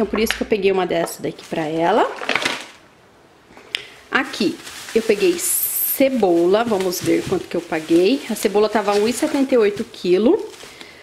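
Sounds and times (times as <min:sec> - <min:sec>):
plastic bags crinkling: 0:00.7 - 0:02.9, 0:03.6 - 0:11.0.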